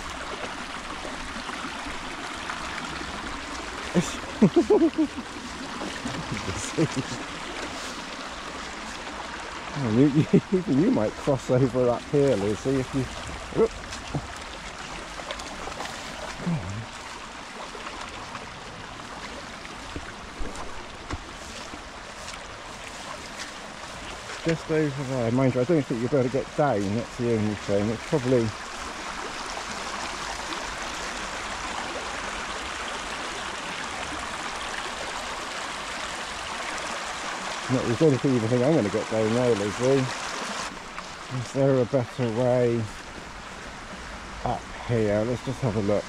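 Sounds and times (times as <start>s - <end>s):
stream trickling over stones: 0.0s - 46.0s
footsteps through tall grass: 20.0s - 24.5s.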